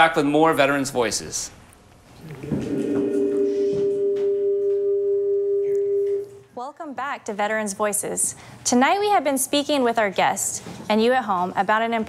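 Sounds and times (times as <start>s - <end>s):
sustained chime-like tone: 2.7s - 6.3s.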